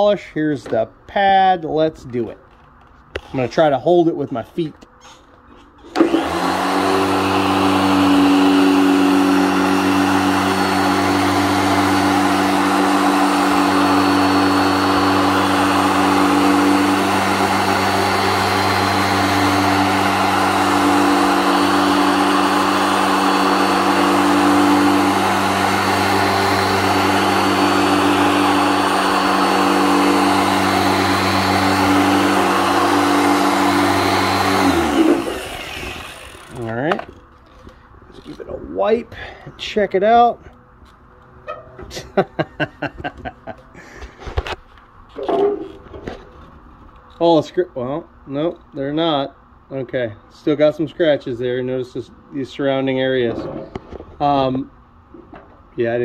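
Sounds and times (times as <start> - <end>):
electric polisher running: 5.9 - 36.7
polisher winding down: 5.9 - 37.2.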